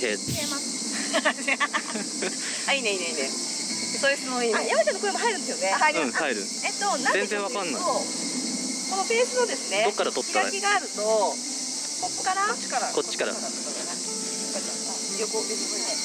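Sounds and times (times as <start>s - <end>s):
insects chorus: 0.0s - 16.0s
women talking: 0.3s - 0.6s, 2.7s - 6.0s, 6.6s - 8.0s, 8.9s - 11.4s, 12.0s - 12.9s, 14.9s - 16.0s.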